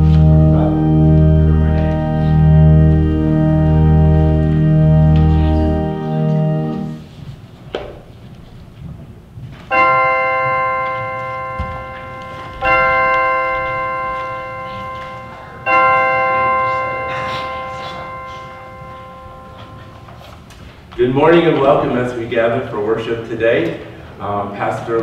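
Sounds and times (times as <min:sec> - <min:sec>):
bell tolling: 0:00.0 - 0:07.1, 0:09.7 - 0:22.0.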